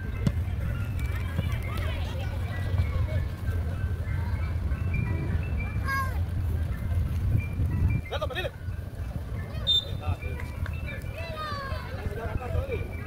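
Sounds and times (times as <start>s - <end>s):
distant voices: 0.0s - 13.0s
ice cream truck jingle: 0.0s - 13.0s.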